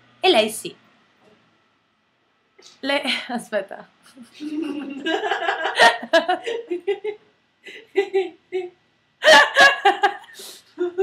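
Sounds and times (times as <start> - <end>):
woman laughing: 4.2 - 11.0.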